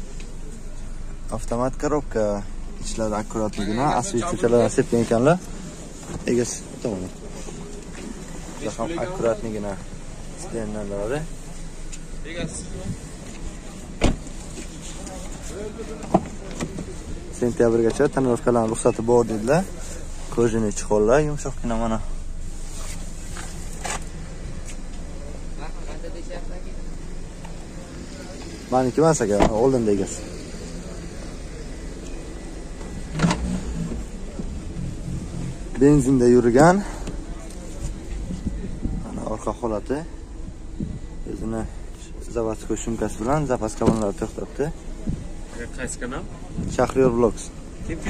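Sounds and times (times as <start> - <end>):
faint voices: 0.0 - 48.0
low rumble of handling: 0.0 - 48.0
car trunk latch click: 33.1 - 33.6.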